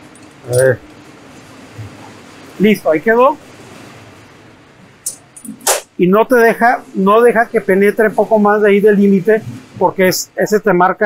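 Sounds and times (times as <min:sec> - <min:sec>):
person talking: 0:00.5 - 0:00.9, 0:01.8 - 0:03.4, 0:05.1 - 0:11.0
short sharp hiss: 0:05.0 - 0:06.0.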